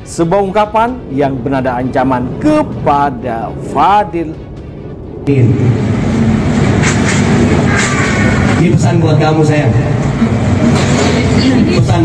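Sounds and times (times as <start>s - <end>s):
low rumble of crowded room: 0.0s - 12.0s.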